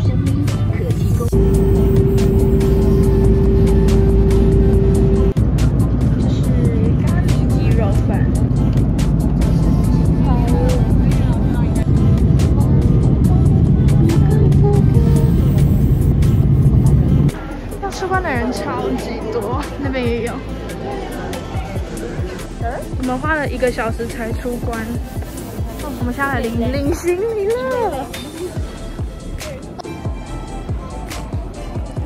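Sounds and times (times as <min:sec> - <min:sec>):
background music: 0:00.0 - 0:32.0
steady tone: 0:01.3 - 0:05.7
jet engine cabin roar: 0:01.3 - 0:17.3.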